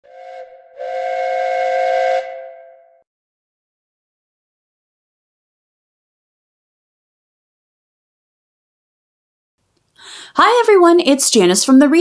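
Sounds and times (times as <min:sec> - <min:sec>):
steam train whistle: 0:00.0 - 0:03.0.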